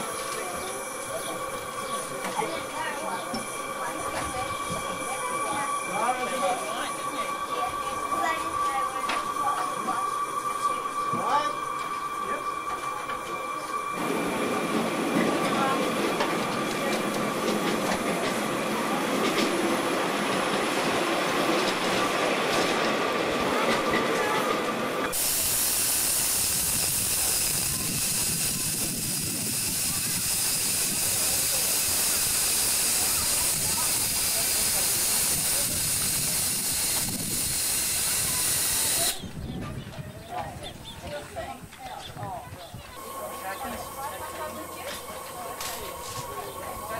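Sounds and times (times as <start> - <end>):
steam hissing: 0.0 - 39.3, 42.9 - 46.9
low rough rushing noise: 43.0 - 46.9.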